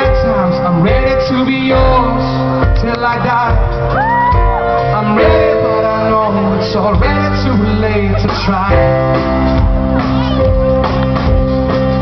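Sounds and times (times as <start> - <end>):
live band playing: 0.0 - 12.0
high wordless sung wail: 3.5 - 9.0.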